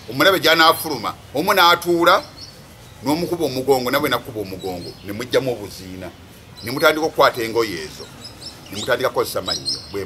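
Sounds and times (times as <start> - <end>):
man talking: 0.0 - 2.4, 3.0 - 10.0
birds chirping: 0.0 - 10.0.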